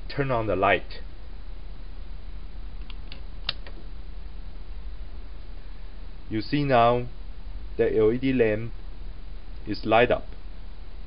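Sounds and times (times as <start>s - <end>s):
steady low hum: 0.0s - 11.0s
rocker switch clicking: 2.8s - 3.8s.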